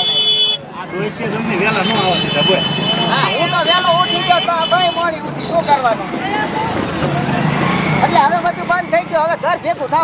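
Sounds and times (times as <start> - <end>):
indistinct crowd voices: 0.0 - 10.0.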